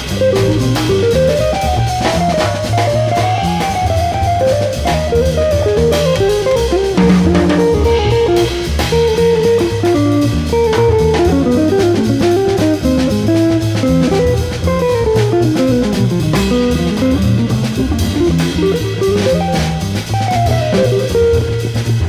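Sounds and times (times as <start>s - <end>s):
drum kit cymbals: 0.0s - 22.0s
electric guitar melody: 0.0s - 22.0s
upright double bass: 0.0s - 22.0s.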